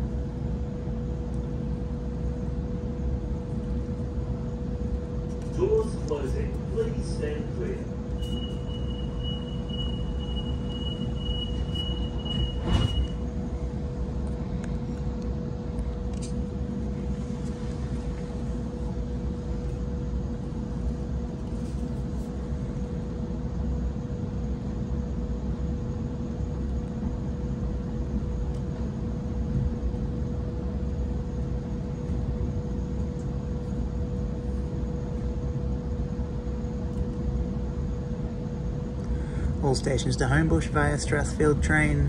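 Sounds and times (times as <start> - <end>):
constant steady hum: 0.0 - 42.0
train running rumble: 0.0 - 42.0.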